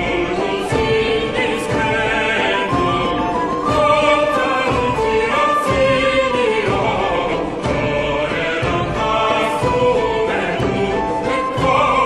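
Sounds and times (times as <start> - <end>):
vocal ensemble singing: 0.0 - 12.0.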